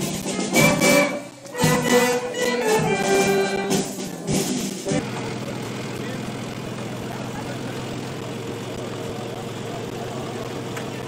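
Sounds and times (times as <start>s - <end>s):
steady motor drone: 4.9s - 11.0s.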